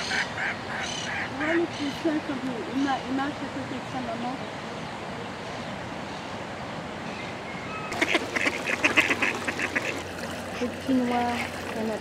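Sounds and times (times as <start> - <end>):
ducks quacking: 7.9 - 11.6.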